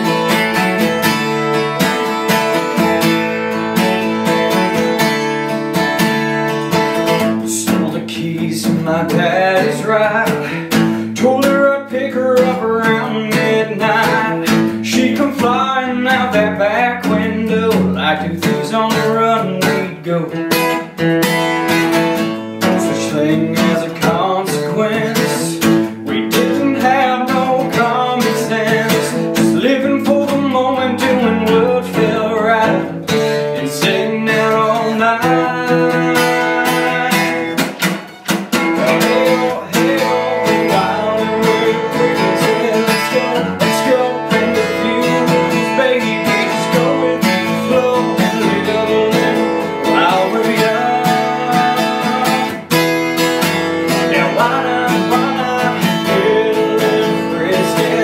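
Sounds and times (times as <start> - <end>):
man singing: 0.0 - 21.0, 22.0 - 58.0
acoustic guitar strumming: 0.0 - 58.0.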